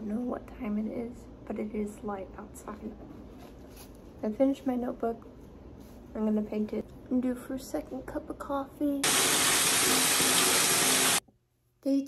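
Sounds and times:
water running into bathtub: 9.0 - 11.2.

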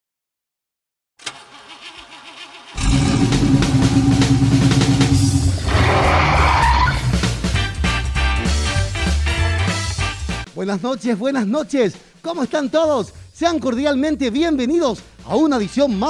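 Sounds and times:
hissing sweep effect: 2.8 - 7.4
music with heavy beat: 2.8 - 10.5.

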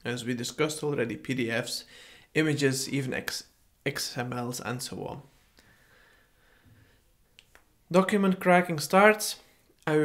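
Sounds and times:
man speaking: 0.0 - 5.4, 7.9 - 10.0.

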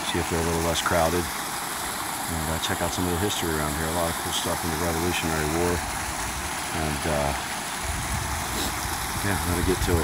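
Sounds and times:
water rushing over stone ledge: 0.0 - 10.0.

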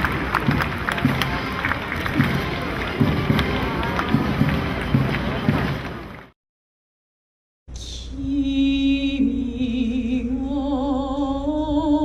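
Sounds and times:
crowd cheering and calling out: 0.0 - 6.3
scattered claps: 0.0 - 6.4.

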